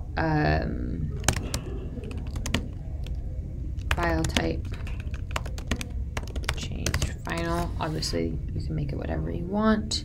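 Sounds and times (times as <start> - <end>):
computer keyboard clicks: 1.2 - 3.2, 3.8 - 7.4.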